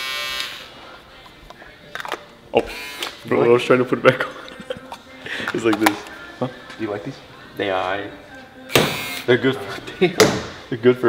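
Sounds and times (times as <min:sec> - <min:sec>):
electric shaver motor buzzing: 0:00.0 - 0:00.7, 0:02.6 - 0:03.2, 0:08.7 - 0:09.3.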